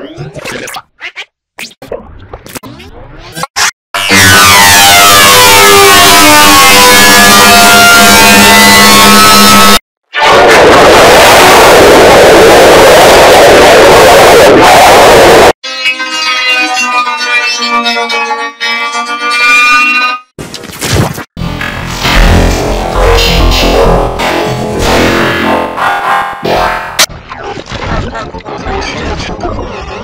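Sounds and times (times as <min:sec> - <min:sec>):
harsh distorted noise: 0:04.0 - 0:15.6, 0:21.4 - 0:27.1
choppy pitch-warped sound: 0:04.1 - 0:15.6.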